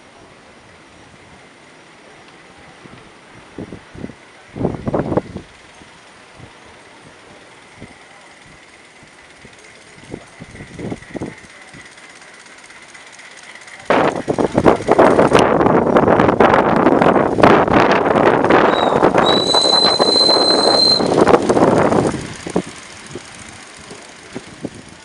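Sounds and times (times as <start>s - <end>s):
wheels clattering on rails: 4.1s - 25.0s
steady high tone: 18.5s - 24.2s.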